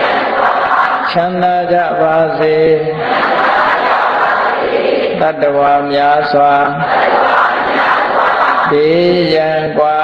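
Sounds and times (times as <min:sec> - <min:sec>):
group chanting: 0:00.0 - 0:10.0
man chanting: 0:01.0 - 0:03.0, 0:05.1 - 0:06.8, 0:08.6 - 0:10.0.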